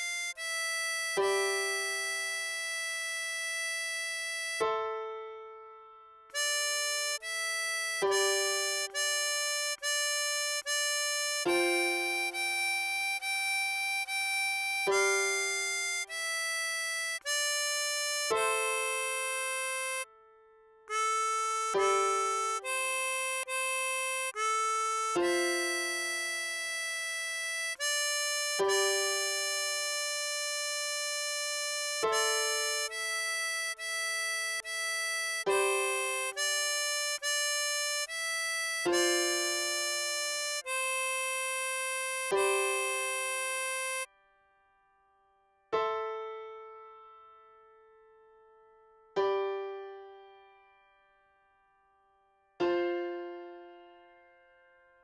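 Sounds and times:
harmonica long steady note: 0:00.0 - 0:04.6, 0:06.3 - 0:20.3, 0:20.9 - 0:44.1.

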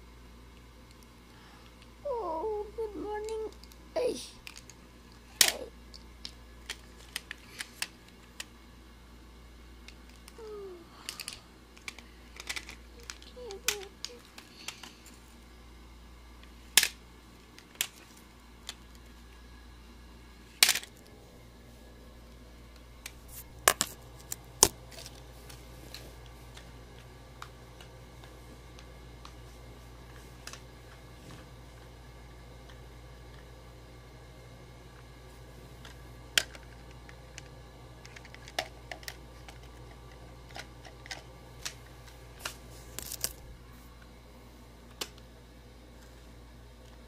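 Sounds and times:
small dog whimpering: 0:02.1 - 0:02.9.

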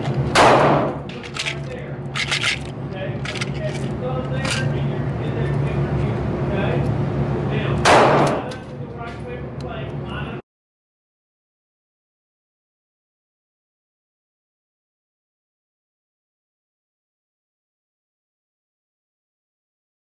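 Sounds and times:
steady low hum: 0:00.0 - 0:10.4
gunshots with echo: 0:00.3 - 0:01.1, 0:07.8 - 0:08.5
cartridges and magazines clicking: 0:01.2 - 0:04.7.

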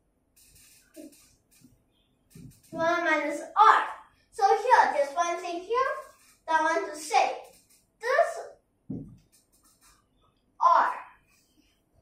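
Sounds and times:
girl speaking: 0:02.7 - 0:08.6, 0:10.6 - 0:11.2.

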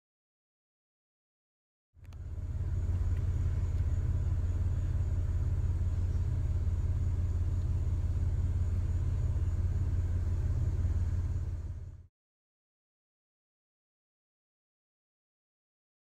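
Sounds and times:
vehicle engine idling: 0:02.0 - 0:12.1.

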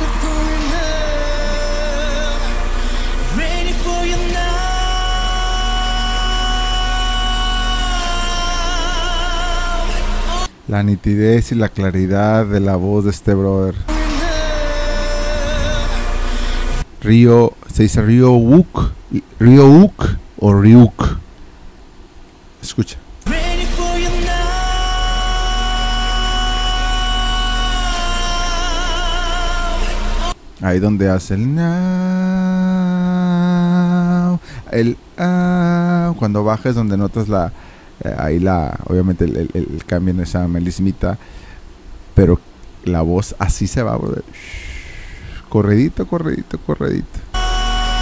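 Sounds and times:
backing track music: 0:00.0 - 0:10.5, 0:13.9 - 0:16.9, 0:23.3 - 0:30.4, 0:47.4 - 0:48.0
pop backing track: 0:00.0 - 0:10.5
man singing long high note: 0:00.0 - 0:10.8, 0:13.3 - 0:17.4, 0:23.2 - 0:36.8, 0:47.3 - 0:48.0.

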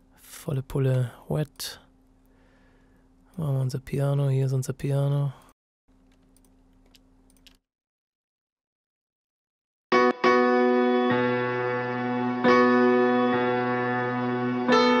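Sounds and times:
piano chords with reverb: 0:10.0 - 0:15.0.

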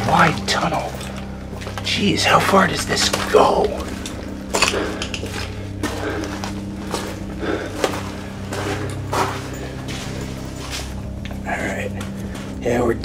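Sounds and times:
footsteps crunching on muddy floor: 0:00.0 - 0:13.0
steady low hum: 0:00.0 - 0:13.0.

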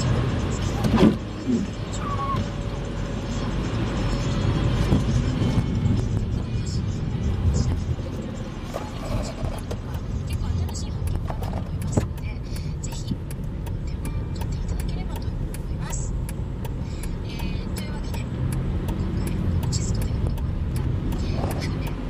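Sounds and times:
car engine and tyre rumble: 0:00.0 - 0:22.0.

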